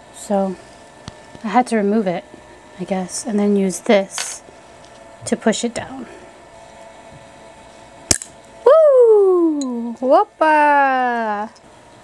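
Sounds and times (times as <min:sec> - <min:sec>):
woman exclaiming: 0:08.6 - 0:11.5.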